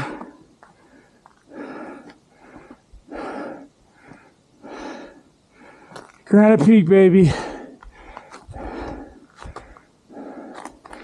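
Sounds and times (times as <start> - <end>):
person breathing hard: 0.0 - 6.1, 7.2 - 11.0.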